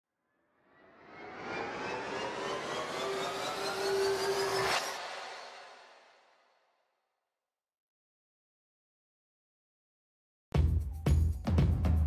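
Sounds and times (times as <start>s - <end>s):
rush of noise with rising tones: 0.6s - 6.5s.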